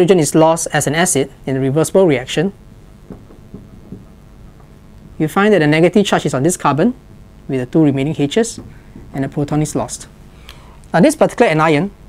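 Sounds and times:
low room rumble: 0.0 - 12.0
marker writing on whiteboard: 3.1 - 4.7.

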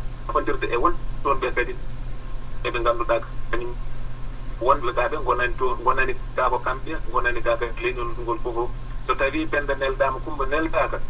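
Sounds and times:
steady low hum: 0.0 - 11.0
man speaking over telephone line: 0.3 - 1.8, 2.6 - 3.8, 4.6 - 11.0.

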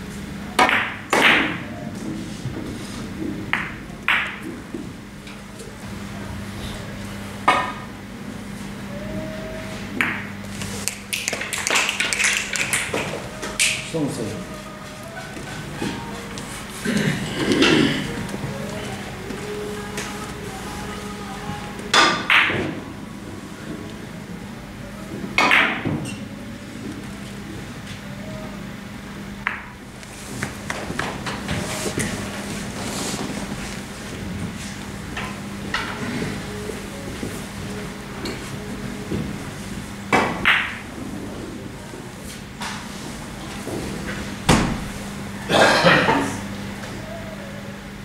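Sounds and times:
steady low hum: 0.0 - 48.0
billiard balls clacking: 0.6 - 5.7, 7.4 - 7.9, 9.8 - 23.0, 25.1 - 27.1, 29.4 - 41.6.

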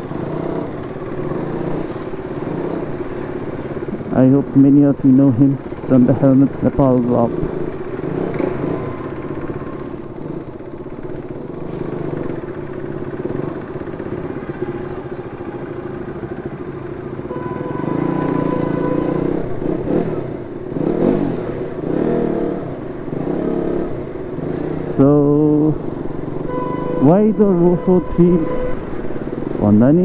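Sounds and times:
motorcycle engine revving: 0.0 - 30.0.

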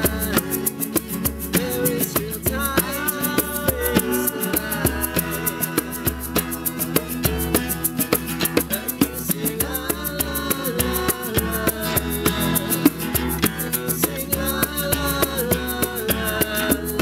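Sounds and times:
acoustic guitars playing: 0.0 - 17.0
djembe: 0.0 - 17.0
steady percussion beat: 0.0 - 17.0.

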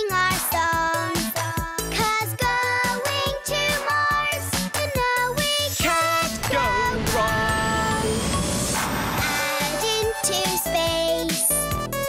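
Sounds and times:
upbeat children's music: 0.0 - 12.0
rocket whoosh: 6.0 - 9.8.

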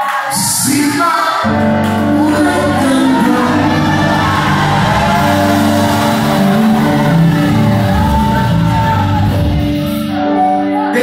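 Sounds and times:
man singing into a microphone: 0.2 - 9.4, 10.4 - 11.0
amplified musical accompaniment: 1.4 - 11.0.

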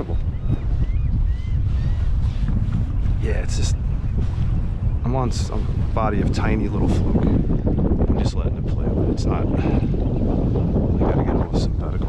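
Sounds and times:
choppy water: 0.0 - 12.0
wind buffeting microphone: 0.0 - 12.0.

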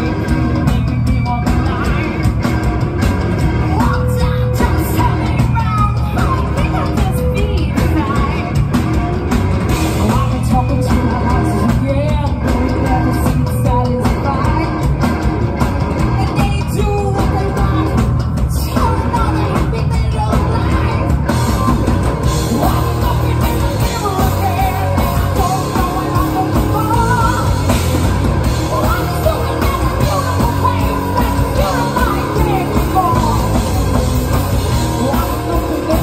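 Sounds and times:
woman singing: 0.0 - 2.4, 3.5 - 8.8, 9.7 - 15.0, 16.0 - 36.0
rock band playing: 0.0 - 36.0.

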